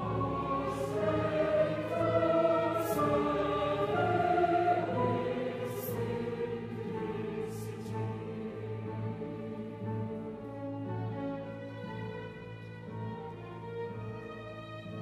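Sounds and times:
mixed choir singing: 0:00.0 - 0:10.3
string orchestra: 0:00.0 - 0:15.0.

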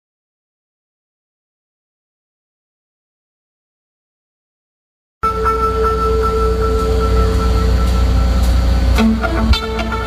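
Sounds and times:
heavy low rumble: 0:05.2 - 0:10.0
orchestra holding sustained notes: 0:05.2 - 0:10.0.

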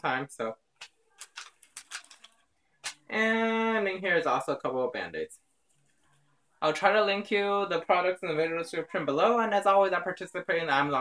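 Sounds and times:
small rustles of wrappers: 0:00.8 - 0:03.1.

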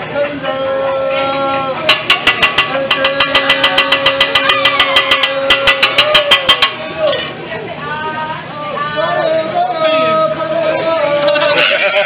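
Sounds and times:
steady high tone: 0:01.1 - 0:07.2
metal spatula clacking on griddle: 0:01.9 - 0:07.4.

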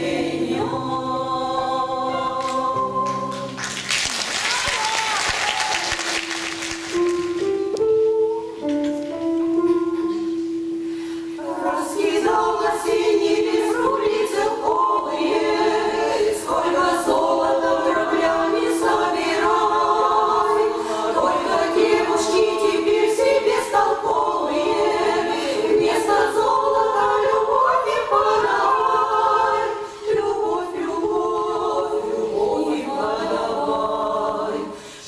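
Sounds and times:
women singing in harmony: 0:00.0 - 0:03.6, 0:11.3 - 0:35.0.

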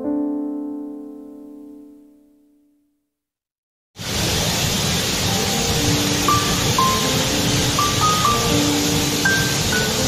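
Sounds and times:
waterfall rushing: 0:04.0 - 0:10.0
slow sparse music notes: 0:05.3 - 0:10.0.

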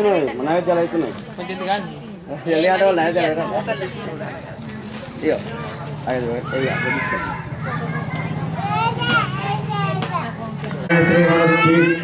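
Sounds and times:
people talking: 0:03.2 - 0:12.0.

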